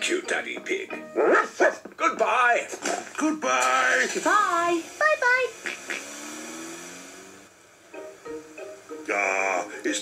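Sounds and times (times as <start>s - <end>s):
cartoon car engine hum: 4.2s - 9.9s.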